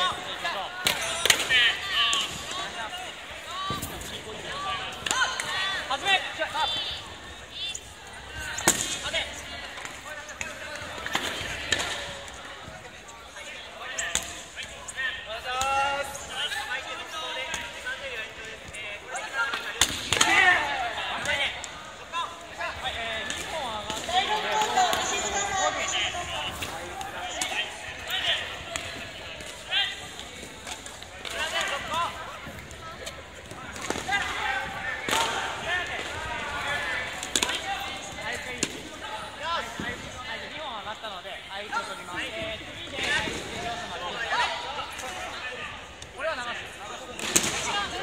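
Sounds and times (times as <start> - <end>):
echoing shouts and voices: 0.0 - 48.0.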